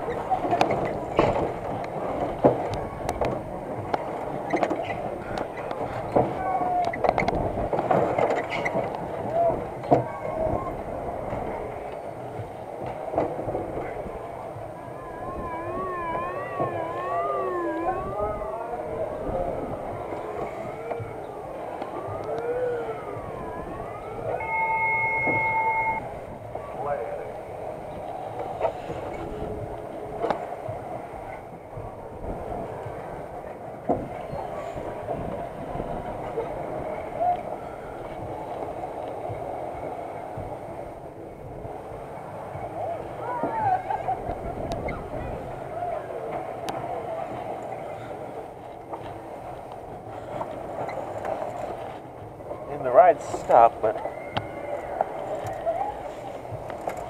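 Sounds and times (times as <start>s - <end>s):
amusement ride mechanical rumble: 0.0s - 57.0s
people's voices: 0.0s - 57.0s
warbling siren-like tone: 14.6s - 26.2s
two-note beep: 24.4s - 26.0s.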